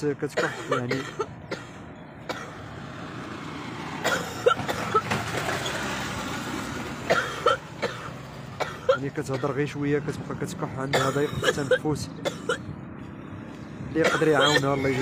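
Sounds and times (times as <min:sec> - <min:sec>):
woman coughing: 0:00.4 - 0:02.6, 0:04.0 - 0:05.0, 0:07.1 - 0:09.6, 0:10.9 - 0:12.7, 0:14.0 - 0:14.9
motorcycle passing: 0:01.4 - 0:08.6, 0:12.0 - 0:14.0.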